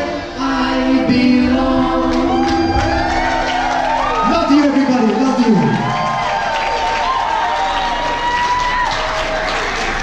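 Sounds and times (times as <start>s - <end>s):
voices singing a held note: 0.0s - 4.1s.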